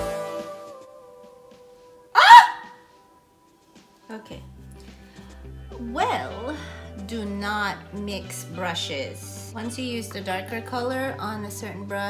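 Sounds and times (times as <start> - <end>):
faint background music note: 0.0 - 12.0
woman yelping: 2.2 - 2.8.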